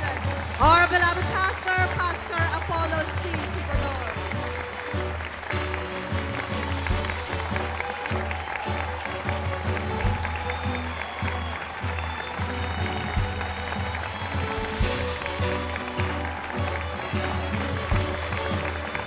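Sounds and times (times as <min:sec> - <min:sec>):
large crowd applauding: 0:00.0 - 0:19.0.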